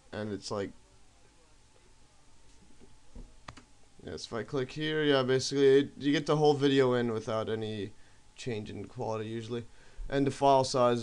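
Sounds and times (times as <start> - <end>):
faint room noise: 0.0 - 11.0
computer mouse click: 3.4 - 3.7.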